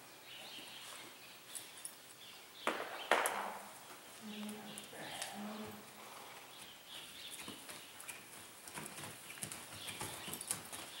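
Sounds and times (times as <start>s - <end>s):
hooves on soft dirt: 3.8s - 11.0s.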